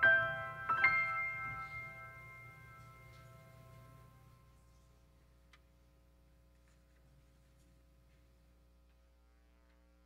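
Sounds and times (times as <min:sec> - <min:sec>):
grand piano chord ringing: 0:00.0 - 0:04.6.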